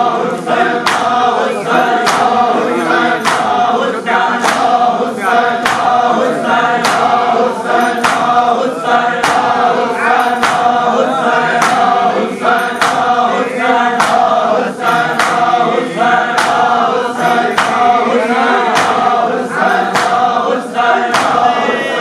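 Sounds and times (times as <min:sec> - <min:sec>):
men chanting in unison: 0:00.0 - 0:22.0
hands slapping chests: 0:00.8 - 0:05.0, 0:05.6 - 0:06.2, 0:06.8 - 0:08.5, 0:09.2 - 0:09.7, 0:10.3 - 0:13.2, 0:14.0 - 0:18.1, 0:18.7 - 0:20.4, 0:21.1 - 0:21.6.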